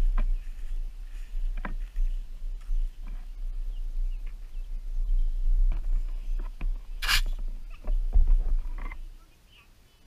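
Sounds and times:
wind and handling rumble: 0.0s - 9.2s.

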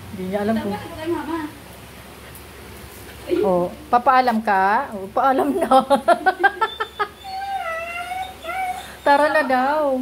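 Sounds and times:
dog whimpering and whining: 6.6s - 9.8s.

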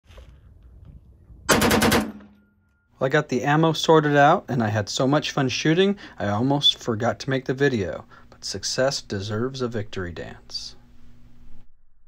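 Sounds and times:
machine gun burst: 1.5s - 2.4s.

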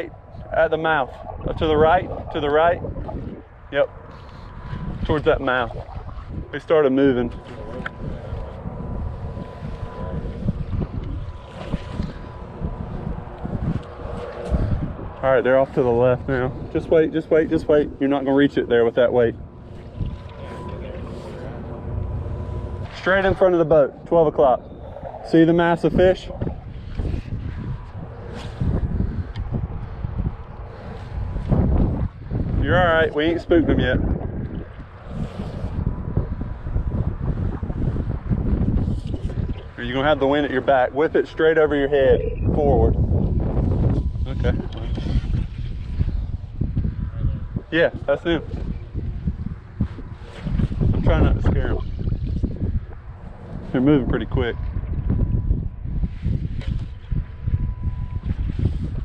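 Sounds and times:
wind gusting on microphone: 0.0s - 59.0s.

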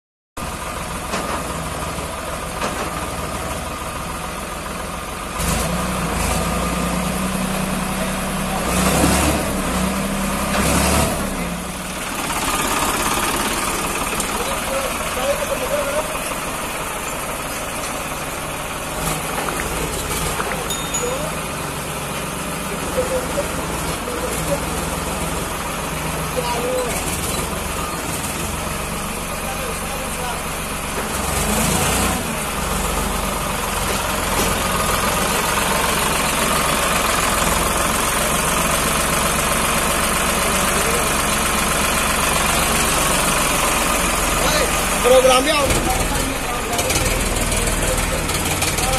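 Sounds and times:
tractor diesel engine running: 0.4s - 48.9s.

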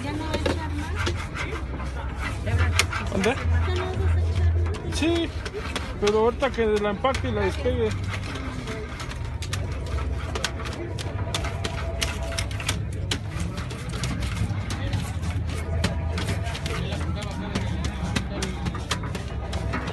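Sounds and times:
metal spatula scraping a griddle: 0.0s - 19.9s.

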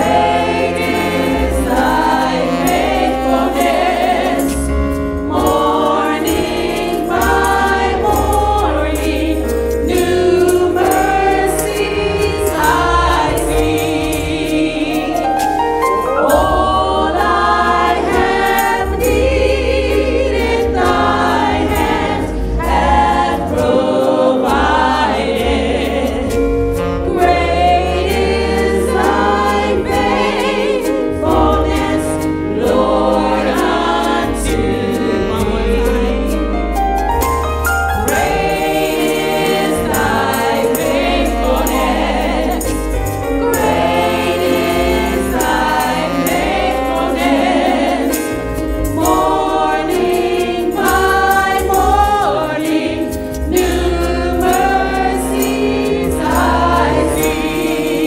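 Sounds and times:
saxophone: 0.0s - 16.6s, 25.9s - 51.2s
group singing gospel song: 0.0s - 58.0s
keyboards: 0.0s - 58.0s.

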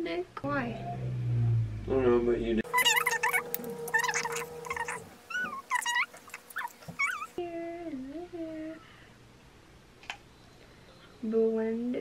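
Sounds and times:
dog whining: 2.7s - 7.4s.

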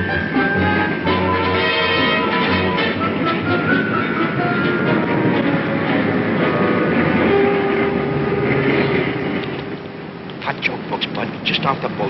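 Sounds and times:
orchestral music: 0.0s - 10.2s
train rumble and rattle: 0.0s - 12.0s.

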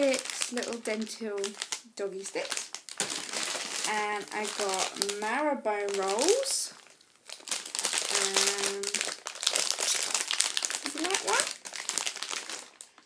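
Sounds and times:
plastic packet crackling: 0.0s - 13.0s.

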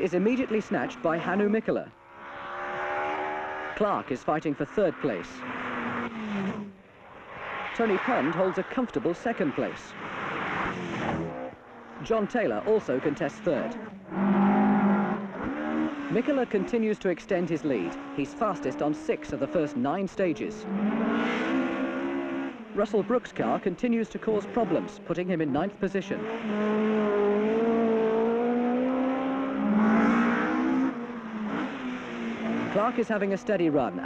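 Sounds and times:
rally car engine revving high: 0.0s - 34.0s.

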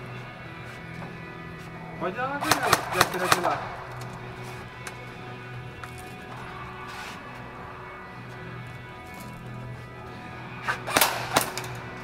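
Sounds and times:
background music: 0.0s - 12.0s
airsoft gun firing: 2.4s - 4.0s, 10.8s - 12.0s.

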